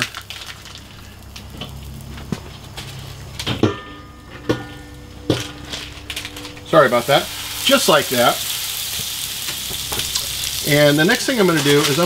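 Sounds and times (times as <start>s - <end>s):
low steady hum: 0.0s - 12.0s
metal pot and utensils clanking: 2.8s - 12.0s.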